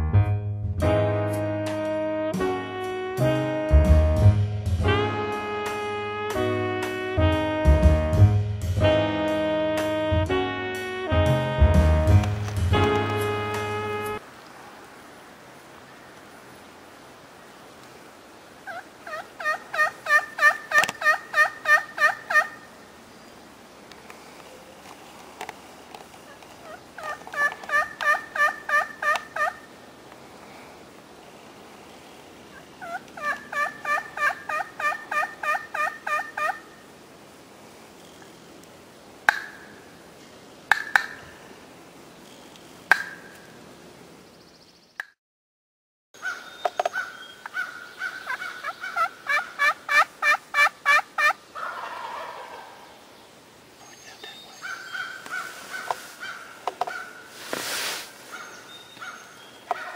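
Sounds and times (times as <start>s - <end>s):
wild turkey yelping: 18.6s - 22.7s, 26.3s - 29.7s, 32.5s - 36.7s, 46.2s - 53.0s, 54.5s - 57.3s, 58.2s - 59.9s.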